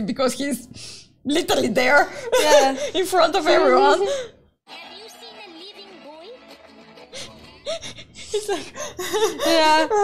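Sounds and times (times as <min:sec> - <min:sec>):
quiet background music: 0:04.7 - 0:10.0.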